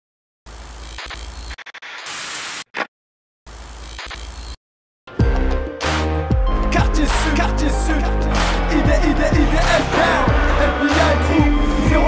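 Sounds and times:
hissing static: 0:00.5 - 0:02.9.

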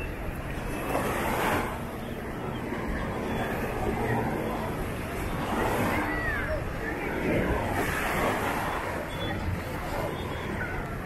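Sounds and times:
distant voices: 0:00.0 - 0:11.0
surf rushing: 0:00.0 - 0:11.0.

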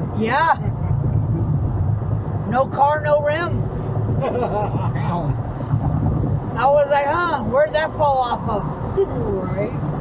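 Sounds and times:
road and engine rumble in car: 0:00.0 - 0:10.0.

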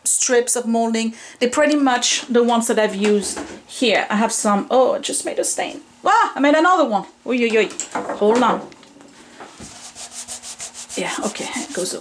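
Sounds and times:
cloth rubbing on wood: 0:09.5 - 0:12.0.

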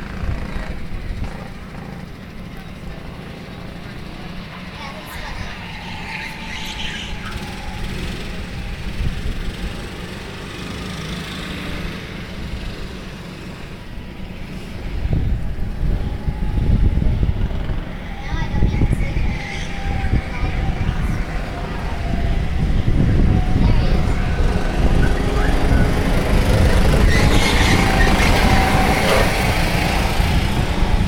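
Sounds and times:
go-kart engines whining: 0:00.0 - 0:31.0
heavy low rumble: 0:14.8 - 0:31.0.

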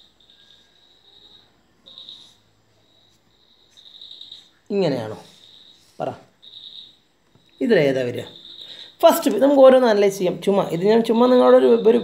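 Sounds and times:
high-pitched insect trilling: 0:00.0 - 0:12.0.

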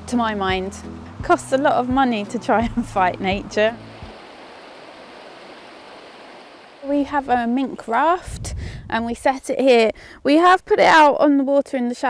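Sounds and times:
river running over stones: 0:01.2 - 0:08.2.

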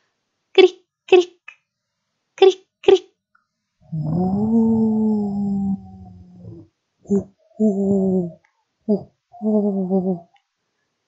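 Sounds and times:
woman imitating animal howl: 0:03.9 - 0:06.6.

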